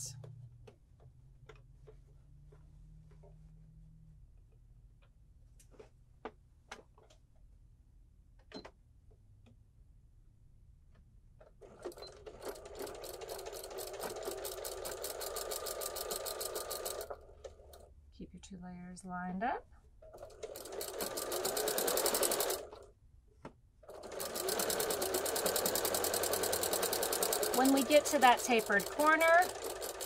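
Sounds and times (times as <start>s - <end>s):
sewing machine stitching: 11.6s - 17.9s, 20.0s - 22.9s, 23.8s - 30.0s.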